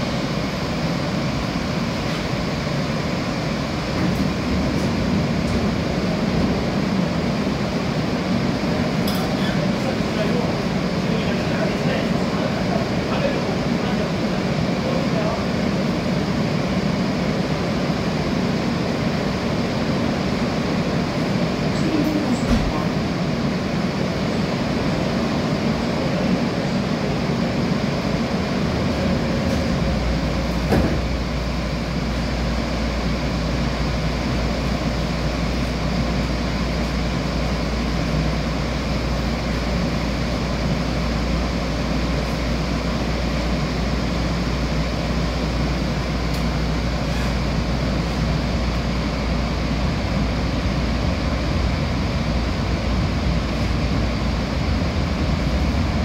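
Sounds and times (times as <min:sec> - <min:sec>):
train interior noise: 0:00.0 - 0:56.0.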